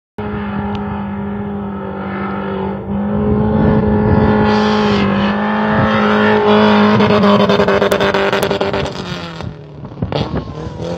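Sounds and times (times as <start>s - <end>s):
rally car engine high revs: 0.2s - 10.9s.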